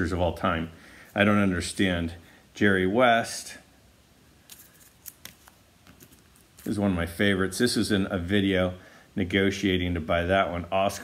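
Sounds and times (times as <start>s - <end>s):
cards handled with light clicks: 4.5s - 6.8s.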